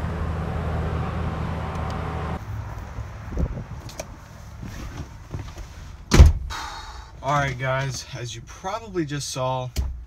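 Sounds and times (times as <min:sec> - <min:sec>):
steady low outdoor rumble: 0:00.0 - 0:09.4
loud thump: 0:06.1 - 0:06.5.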